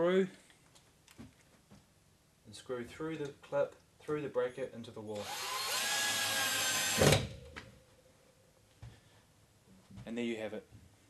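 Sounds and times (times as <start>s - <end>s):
battery drill driving screw: 5.2s - 7.3s.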